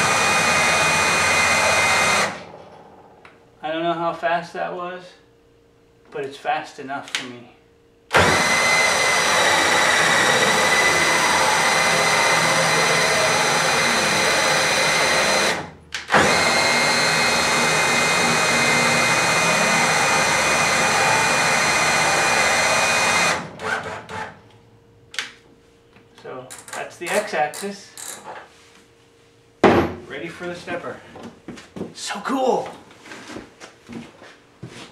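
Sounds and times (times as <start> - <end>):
drill motor whine: 0.0 - 2.6, 8.1 - 24.3.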